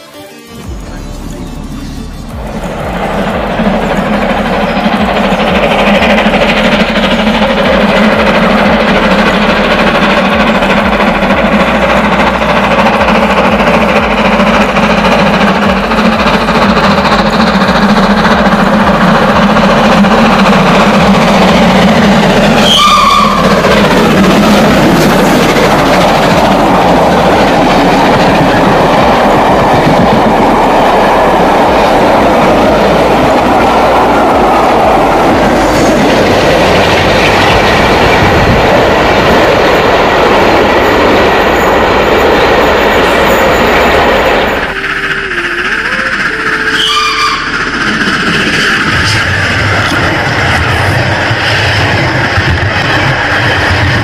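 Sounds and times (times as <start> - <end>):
steam train passing: 0.0 - 54.0.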